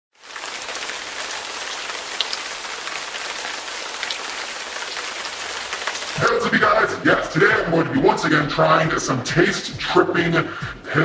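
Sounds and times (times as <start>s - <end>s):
rain-like hiss: 0.1s - 6.3s.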